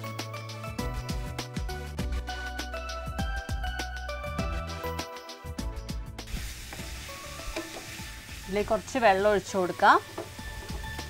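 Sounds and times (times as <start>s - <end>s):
background music with a beat: 0.0s - 8.4s, 10.1s - 11.0s
vegetables sizzling in a frying pan: 6.2s - 11.0s.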